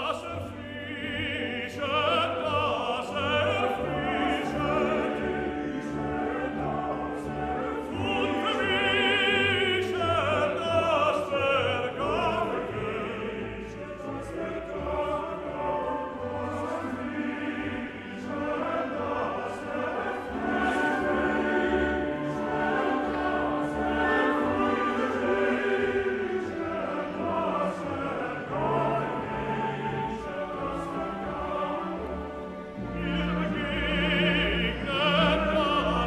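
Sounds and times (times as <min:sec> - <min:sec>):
male chorus singing: 0:00.0 - 0:36.0
orchestra playing: 0:00.0 - 0:36.0.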